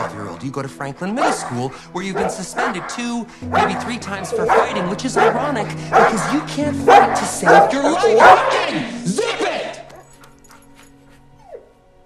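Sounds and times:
faint background music: 0.0s - 12.0s
dog whining: 2.2s - 8.6s, 9.9s - 11.7s.

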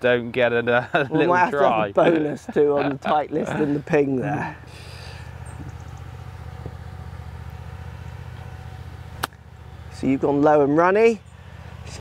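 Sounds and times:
low engine hum: 0.0s - 12.0s
golf club striking ball: 9.1s - 9.4s.

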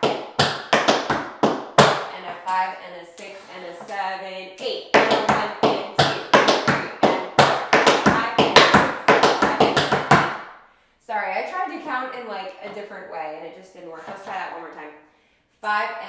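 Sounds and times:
tap shoes on wooden board: 0.0s - 2.0s, 5.0s - 10.4s.

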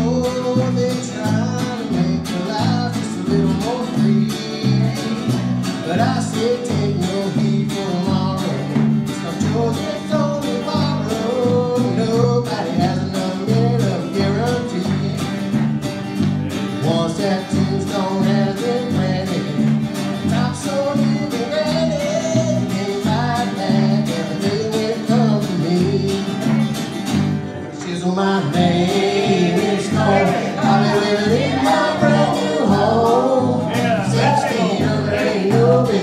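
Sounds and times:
group of voices singing: 0.0s - 15.0s, 16.4s - 26.7s, 27.4s - 36.0s
electric bass: 0.0s - 36.0s
strummed acoustic guitar: 0.0s - 36.0s.

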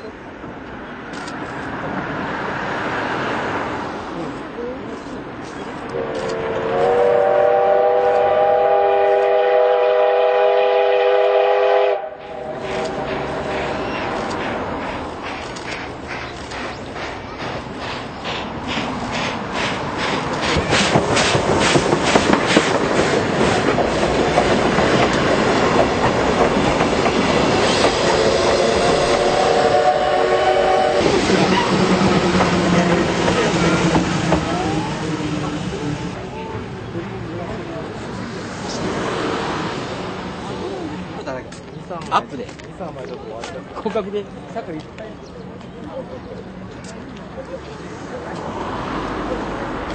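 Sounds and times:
train rumble and wheel clatter: 0.0s - 49.9s
locomotive exhaust beat: 5.9s - 36.2s
steam locomotive whistle: 6.0s - 13.1s, 27.7s - 32.0s.

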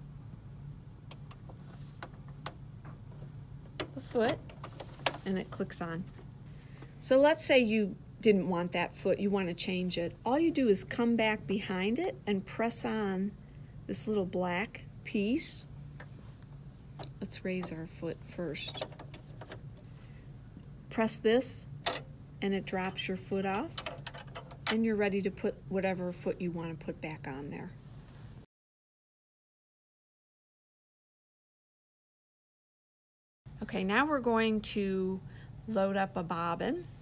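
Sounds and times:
low steady hum: 0.0s - 28.5s, 33.5s - 37.0s.

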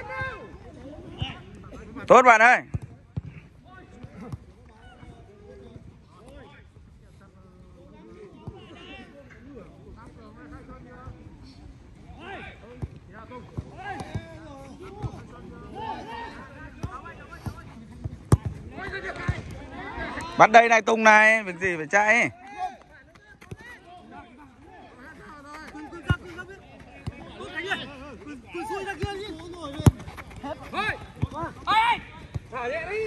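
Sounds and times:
players shouting: 0.0s - 1.5s, 13.4s - 17.6s, 18.7s - 33.0s
ball being kicked: 28.9s - 31.6s.

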